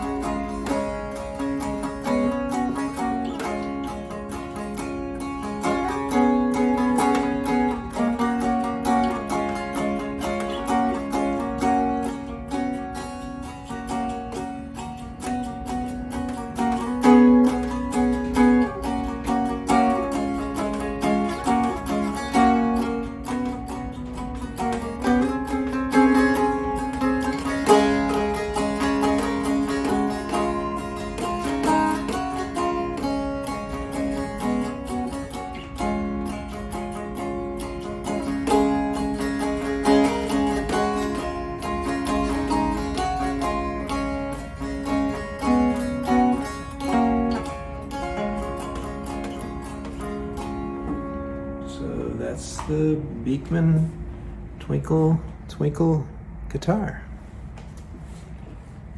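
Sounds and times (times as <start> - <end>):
plucked guitar melody: 0.0 - 55.5
low drone strings: 0.0 - 56.6.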